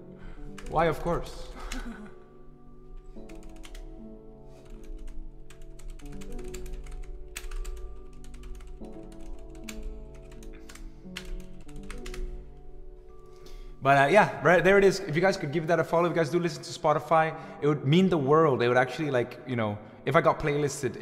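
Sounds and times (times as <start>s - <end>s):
quiet background music: 0.0s - 21.0s
computer keyboard typing: 3.0s - 4.0s, 4.6s - 12.6s.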